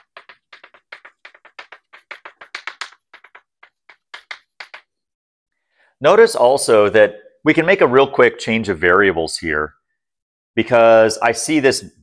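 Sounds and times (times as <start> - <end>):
chalk tapping and scratching on blackboard: 0.0 - 5.0.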